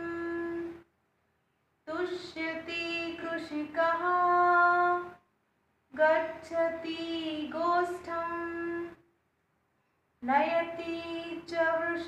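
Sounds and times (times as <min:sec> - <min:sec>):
woman chanting a melody: 0:00.0 - 0:00.8, 0:06.0 - 0:09.0, 0:10.2 - 0:12.0.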